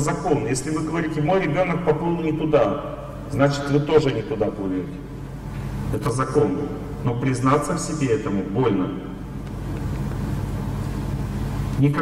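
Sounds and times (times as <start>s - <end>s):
low rumble of room noise: 0.0s - 12.0s.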